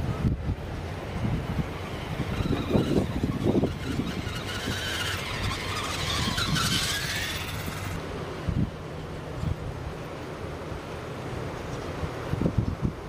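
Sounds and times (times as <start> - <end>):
wind rumble on microphone: 0.0 - 10.0, 11.6 - 13.0
electric motor and gears whining: 0.9 - 8.0.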